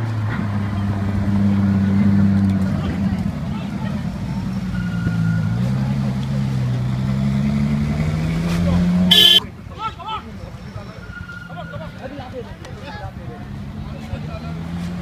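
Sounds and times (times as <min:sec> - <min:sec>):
car engine deep note: 0:09.1 - 0:09.4.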